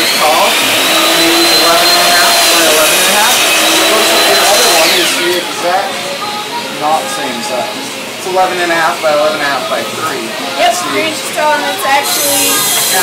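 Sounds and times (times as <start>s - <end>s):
electric motor whine: 0.0s - 13.0s.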